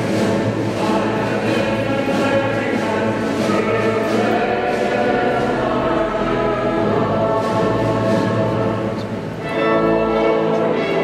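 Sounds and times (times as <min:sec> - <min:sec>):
choir singing held notes: 0:00.0 - 0:11.0
instrumental accompaniment: 0:00.0 - 0:11.0.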